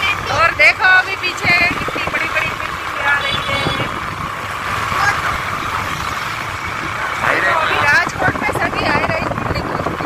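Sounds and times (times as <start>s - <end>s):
engine hum: 0.0s - 10.0s
road and wind noise: 0.0s - 10.0s.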